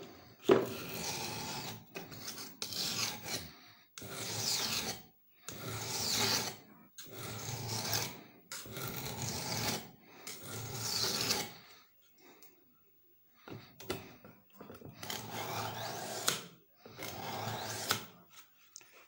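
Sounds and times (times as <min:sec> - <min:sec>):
knife sharpening on whetstone: 0:00.6 - 0:11.5, 0:15.0 - 0:16.4, 0:17.0 - 0:18.1.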